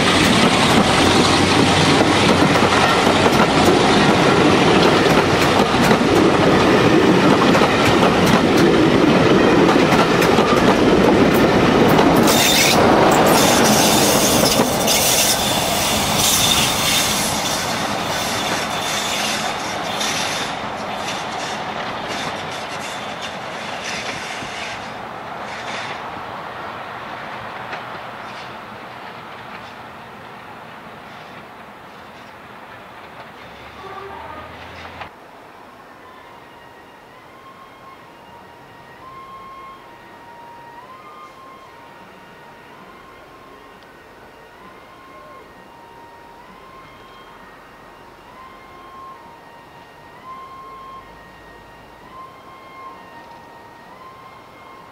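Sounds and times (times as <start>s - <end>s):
train wheels rumbling and clattering: 0.0s - 26.1s, 27.2s - 33.8s
high wheel squeal: 12.2s - 26.0s.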